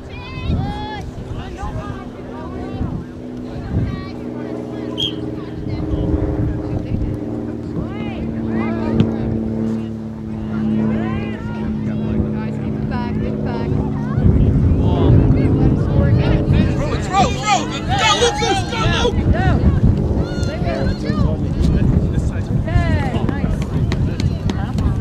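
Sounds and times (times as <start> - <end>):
steady motor drone: 0.1 - 21.5
people calling and shouting: 4.6 - 6.0, 16.4 - 21.2.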